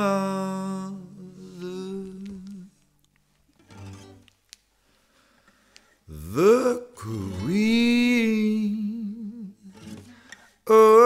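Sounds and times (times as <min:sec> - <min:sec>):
person humming long note: 0:00.0 - 0:02.7
person singing with vibrato: 0:00.0 - 0:02.8, 0:06.1 - 0:11.0.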